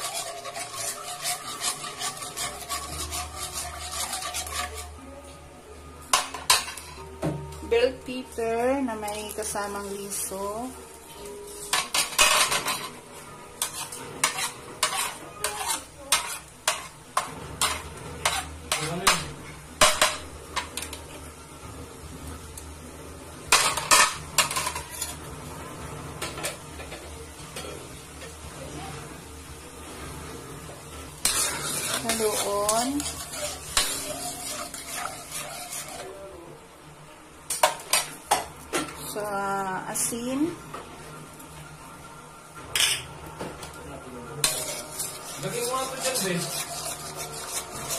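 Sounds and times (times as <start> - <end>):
faint sizzle: 0.0 - 47.9.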